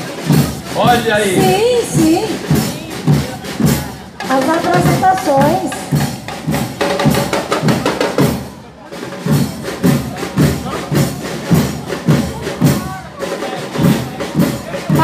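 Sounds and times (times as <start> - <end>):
music with steady drum beat: 0.0 - 15.0.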